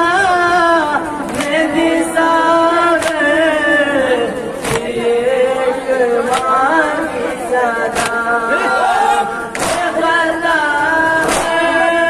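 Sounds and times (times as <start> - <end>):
men singing a lament together: 0.0 - 12.0
sharp slap of chest-beat: 1.3 - 1.6, 3.0 - 3.3, 4.6 - 4.9, 6.3 - 6.6, 7.9 - 8.2, 9.5 - 10.0, 11.2 - 11.6.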